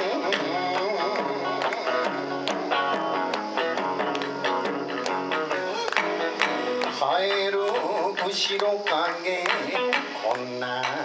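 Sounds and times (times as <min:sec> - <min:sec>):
guitar picking quick notes: 0:00.0 - 0:11.0.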